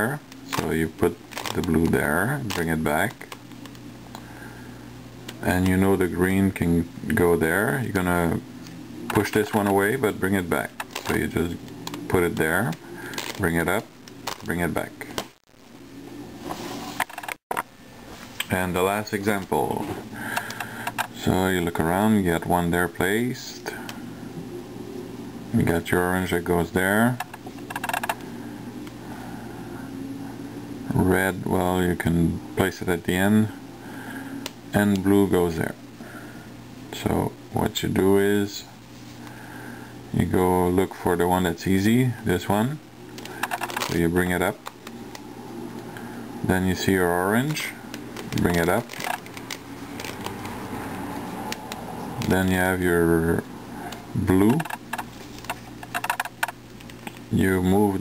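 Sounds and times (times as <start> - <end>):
low steady hum: 0.0 - 58.0
puzzle cube clicking: 27.2 - 28.2, 43.2 - 44.0, 54.5 - 57.2.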